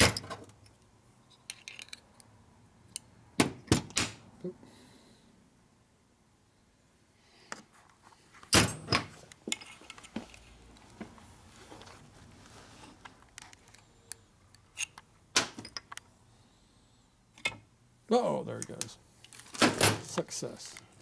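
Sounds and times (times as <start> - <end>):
metal parts clinking: 0.0 - 2.2, 13.4 - 15.0.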